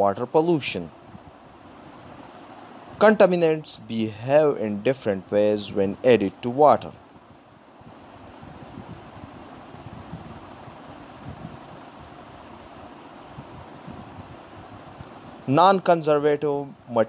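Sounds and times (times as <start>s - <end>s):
steady rushing noise: 0.0s - 17.0s.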